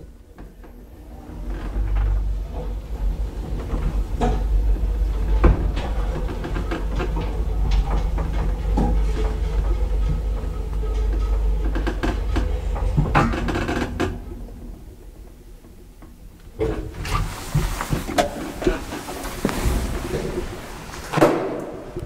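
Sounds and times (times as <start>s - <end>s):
elevator rumble: 0.0s - 22.0s.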